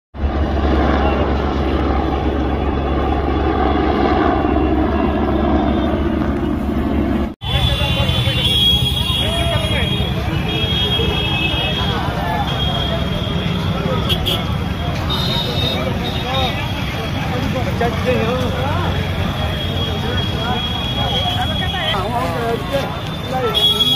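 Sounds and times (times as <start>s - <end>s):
crowd voices: 0.2s - 23.9s
helicopter flying low overhead: 0.2s - 23.9s
road traffic: 0.2s - 23.9s.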